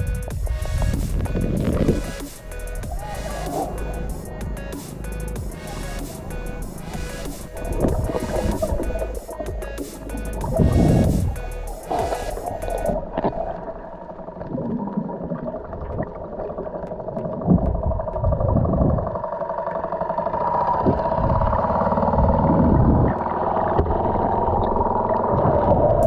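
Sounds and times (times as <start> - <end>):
background music sustained tones: 0.0 - 14.4.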